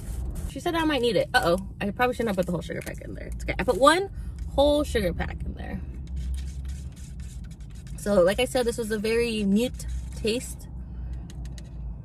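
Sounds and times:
low steady rumble: 0.0s - 12.0s
stir stick scraping paper cup: 6.0s - 12.0s.

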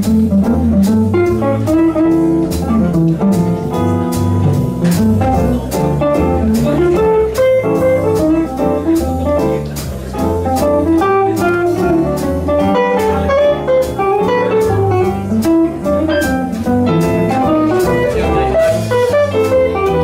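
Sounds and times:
archtop guitar lead: 0.0s - 20.0s
double bass: 0.0s - 20.0s
drums: 0.0s - 20.0s
piano: 0.0s - 20.0s.

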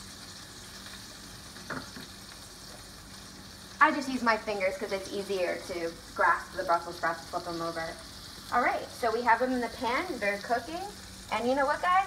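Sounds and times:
sprouts sizzling in frying pan: 0.0s - 12.0s.

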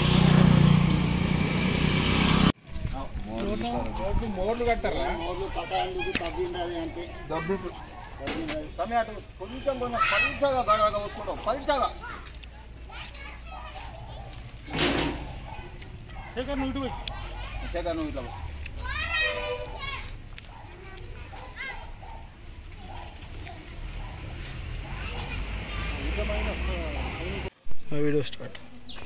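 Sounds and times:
engine drone: 0.0s - 2.6s
people talking outdoors: 2.6s - 29.0s
voices: 2.8s - 29.0s.

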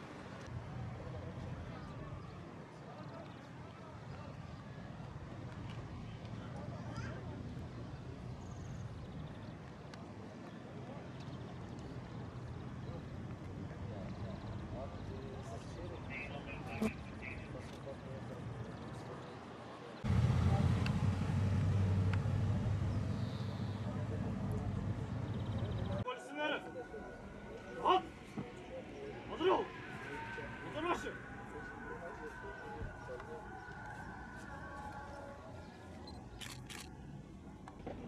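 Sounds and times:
motorcycles riding past: 20.0s - 26.0s
camera shutter clicks: 36.4s - 36.9s.

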